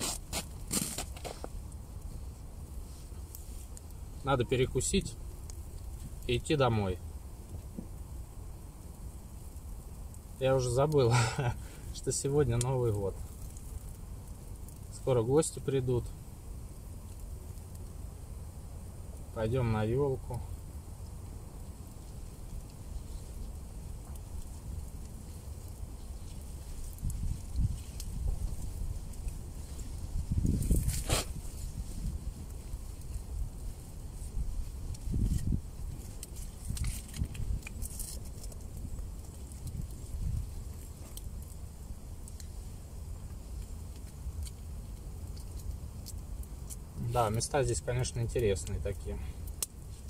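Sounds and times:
campfire crackling and popping: 0.0 - 50.0.

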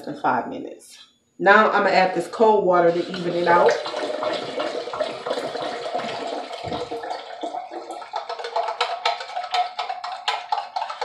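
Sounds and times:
water splashing into metal tumbler: 2.8 - 11.0
pump clicks and knocks: 3.9 - 11.0.

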